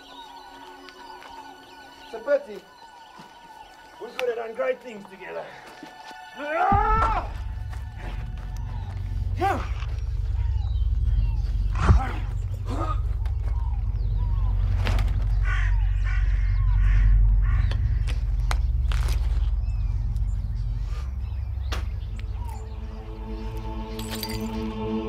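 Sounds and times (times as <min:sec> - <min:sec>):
birds chirping: 0:00.0 - 0:25.0
low rumble: 0:06.7 - 0:25.0.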